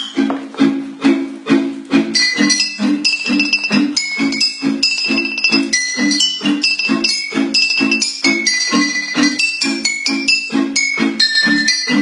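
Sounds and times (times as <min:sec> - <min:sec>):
glass bottles struck melody: 0:00.0 - 0:00.4, 0:02.1 - 0:12.0
strummed chords: 0:02.0 - 0:12.0.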